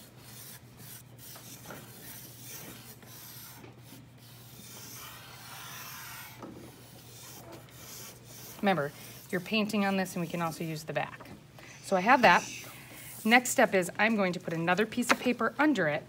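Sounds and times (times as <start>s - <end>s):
pencil scratching on paper: 0.0s - 10.8s, 12.0s - 13.7s.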